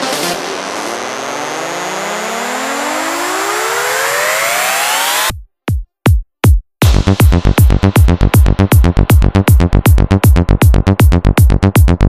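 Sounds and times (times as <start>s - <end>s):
synth tones gliding upward: 0.0s - 5.3s.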